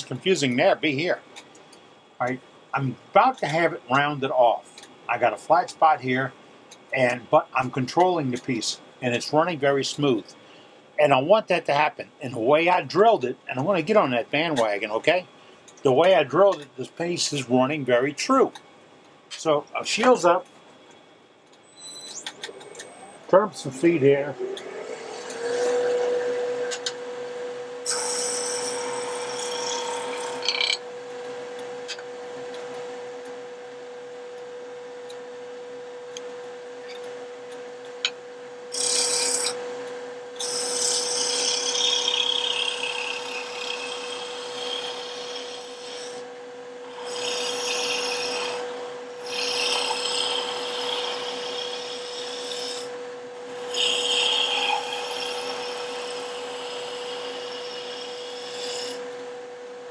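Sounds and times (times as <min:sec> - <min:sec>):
wood lathe humming: 0:22.5 - 0:30.8, 0:38.7 - 0:39.6, 0:40.4 - 0:59.2
turning tool rasping wood: 0:27.9 - 0:30.8, 0:38.7 - 0:39.6, 0:40.4 - 0:46.2, 0:46.9 - 0:52.9, 0:53.6 - 0:59.0.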